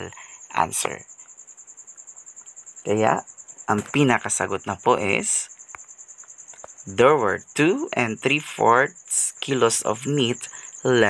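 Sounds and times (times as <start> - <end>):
person speaking: 0.0 - 1.2, 2.8 - 5.5, 6.8 - 11.0.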